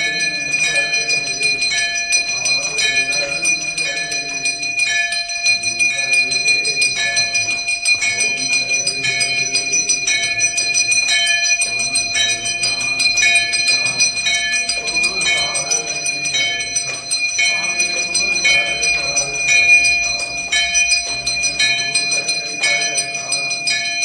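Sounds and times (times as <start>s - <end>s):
bell ringing rapidly: 0.0s - 24.0s
voices singing: 0.0s - 24.0s.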